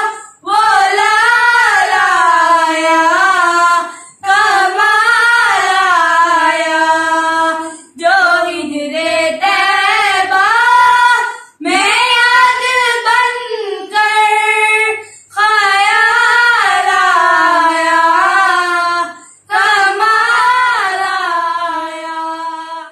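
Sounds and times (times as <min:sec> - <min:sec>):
children singing unaccompanied: 0:00.0 - 0:22.9.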